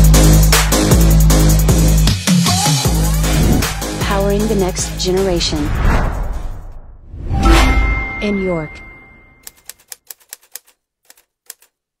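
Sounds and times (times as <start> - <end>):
typewriter key clicks: 9.4 - 11.7.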